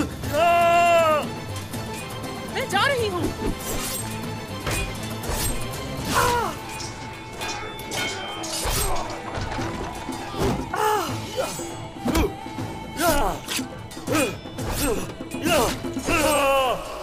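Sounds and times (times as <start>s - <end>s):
dramatic music score: 0.0s - 17.0s
swords clashing: 3.6s - 9.7s.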